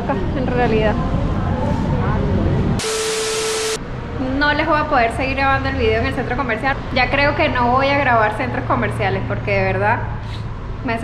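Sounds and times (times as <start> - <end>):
steady beep tone: 2.8 - 3.8
tv static hiss: 2.8 - 3.8.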